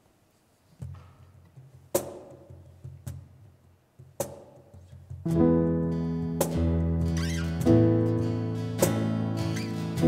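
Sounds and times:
sharp percussive taps: 0.8s - 5.4s.

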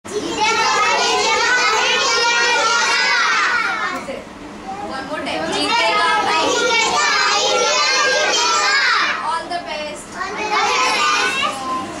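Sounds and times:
children shouting: 0.1s - 4.0s, 5.6s - 9.3s, 10.2s - 12.0s.

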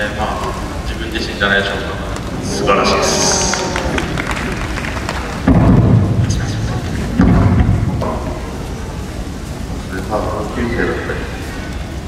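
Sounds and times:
man speaking over public address: 0.0s - 4.1s, 5.5s - 8.7s, 9.8s - 11.6s
low boomy rumble: 0.0s - 12.0s.

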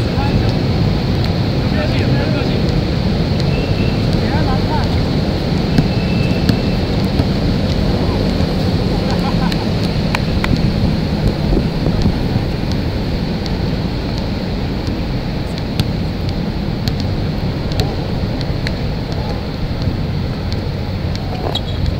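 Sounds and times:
wind buffeting microphone: 0.0s - 21.9s.

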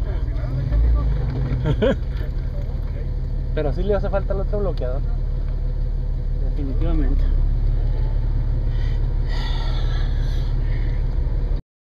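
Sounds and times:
engine idling: 0.0s - 11.6s.

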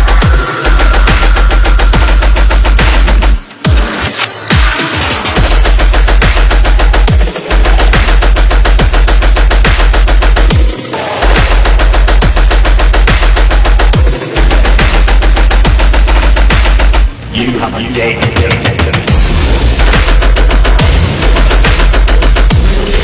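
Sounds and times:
heavy sub-bass: 0.0s - 3.5s, 5.4s - 23.0s
dubstep music: 0.0s - 23.0s
booming kicks: 19.1s - 23.0s.

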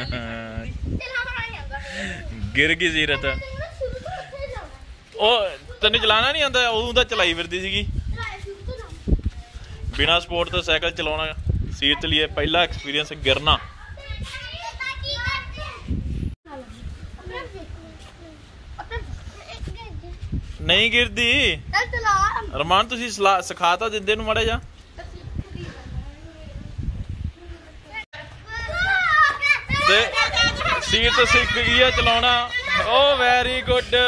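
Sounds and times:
children talking and calling out: 0.0s - 10.0s, 11.7s - 20.6s, 21.7s - 22.6s, 24.8s - 34.0s
child calling out excitedly: 28.4s - 33.0s.

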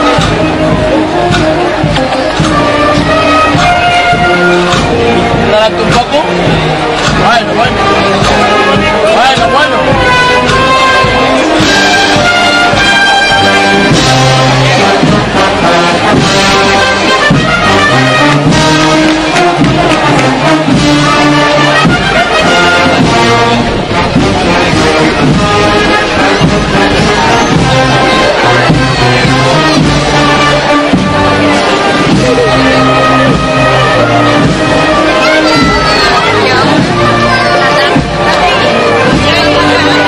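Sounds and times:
brass band playing a march: 0.0s - 40.0s
drum strokes: 0.0s - 40.0s.

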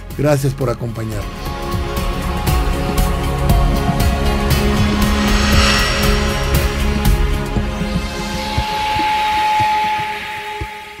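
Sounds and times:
hiss: 4.5s - 10.3s.

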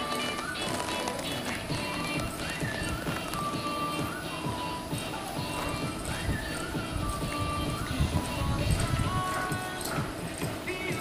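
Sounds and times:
radio music: 0.0s - 11.0s.

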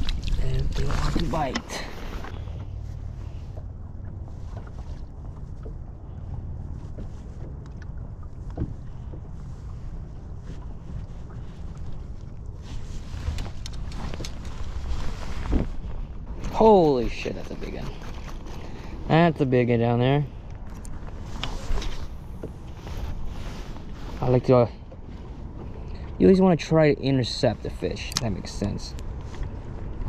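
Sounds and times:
waves slapping against boat: 0.0s - 30.0s.

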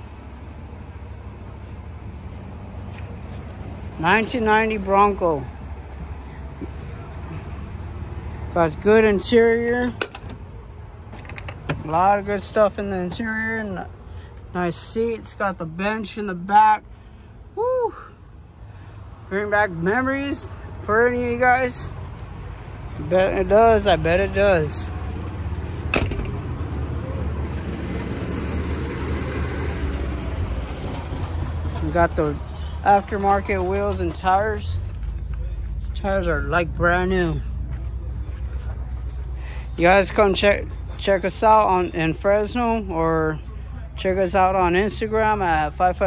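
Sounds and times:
low mechanical rumble: 0.0s - 46.0s
car door latch clicks: 10.0s - 10.4s, 25.9s - 26.4s.

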